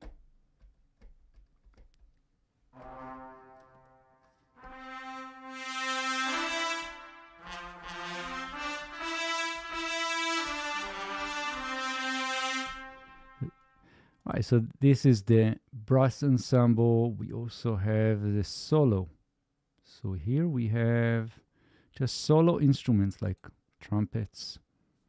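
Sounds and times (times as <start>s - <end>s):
sustained trumpet chords: 2.8s - 14.0s.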